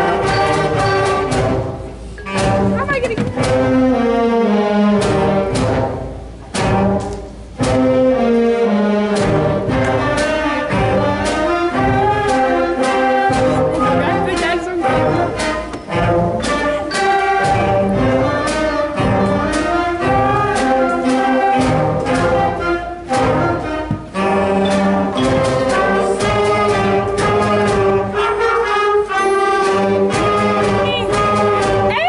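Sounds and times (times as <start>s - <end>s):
concert band playing: 0.0s - 32.0s
percussion strokes: 0.0s - 32.0s.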